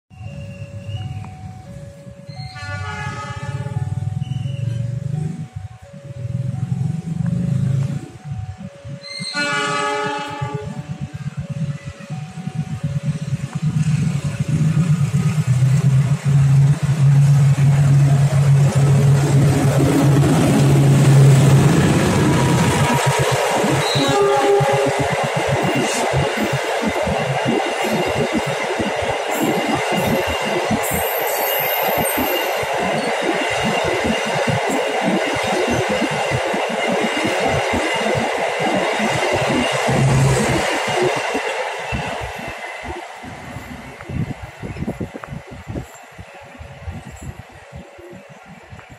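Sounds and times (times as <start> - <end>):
diesel locomotive engine drone: 0.1 - 48.9
train coaches rushing: 0.1 - 48.9
steel wheels clattering on rails: 10.0 - 48.9.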